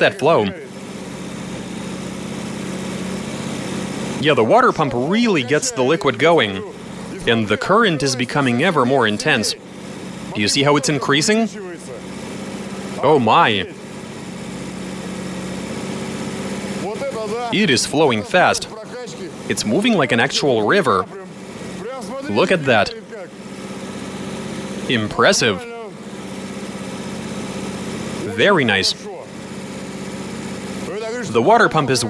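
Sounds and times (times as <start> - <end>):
car engine idling: 0.0 - 32.0.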